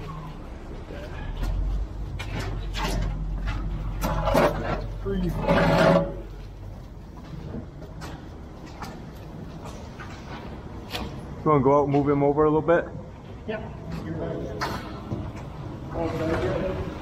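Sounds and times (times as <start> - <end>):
knocks and scrapes: 1.4 - 11.2.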